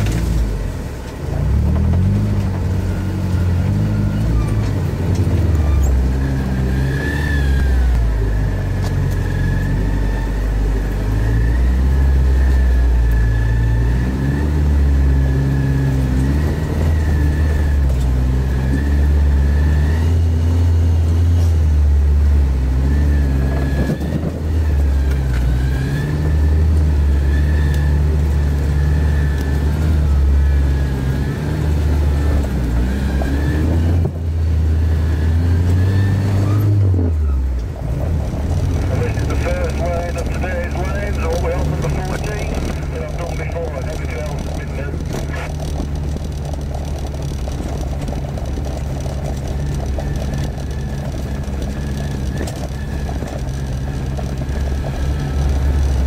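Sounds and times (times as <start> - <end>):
engine heard from inside cab: 0.0 - 56.0.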